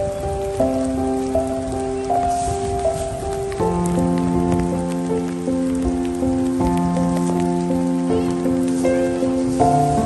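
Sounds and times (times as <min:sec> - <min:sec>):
hail pattering: 0:00.0 - 0:10.0
slow music of sustained chords: 0:00.0 - 0:10.0.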